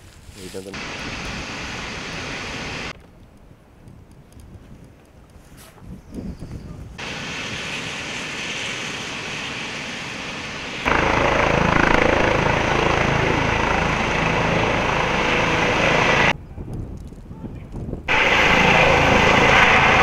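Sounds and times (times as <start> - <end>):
helicopter rotor and turbine: 0.8 - 3.0, 7.0 - 16.4, 18.1 - 20.0.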